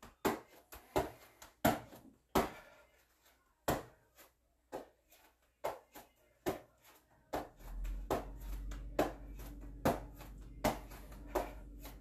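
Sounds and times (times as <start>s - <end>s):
hands slapping exercise mat: 0.0s - 2.8s, 4.7s - 12.0s.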